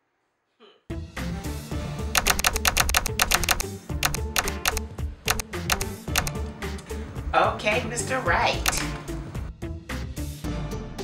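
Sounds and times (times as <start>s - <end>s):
fast typing on laptop keyboard: 2.2s - 6.3s.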